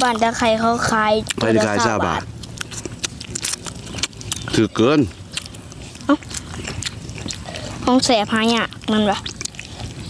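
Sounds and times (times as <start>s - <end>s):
chewing and biting: 0.0s - 10.0s.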